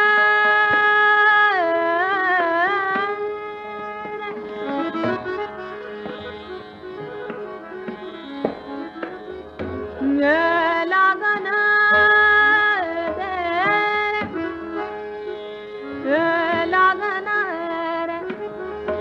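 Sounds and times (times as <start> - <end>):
woman singing classical vocal: 0.0 - 4.3, 10.0 - 14.4, 16.0 - 18.4
tabla strokes: 0.0 - 19.0.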